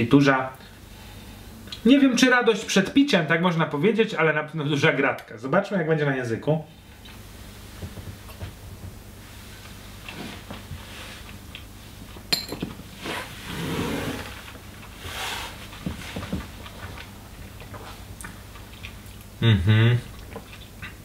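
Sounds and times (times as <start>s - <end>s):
glass knocking on table: 12.3s - 12.7s.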